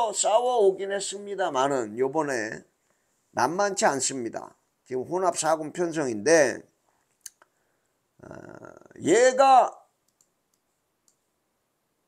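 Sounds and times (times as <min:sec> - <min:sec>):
faint small clicks: 0:07.0 - 0:07.6, 0:10.0 - 0:11.3.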